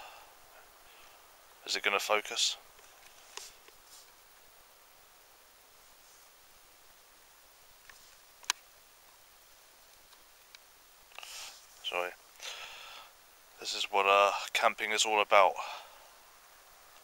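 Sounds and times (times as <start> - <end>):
fire hissing: 0.0 - 14.6
fire crackling and popping: 5.7 - 13.6.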